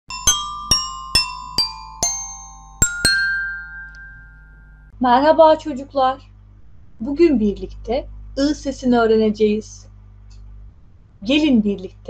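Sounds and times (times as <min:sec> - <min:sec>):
glassy struck chime notes: 0:00.1 - 0:04.9
faint low hum: 0:02.8 - 0:12.0.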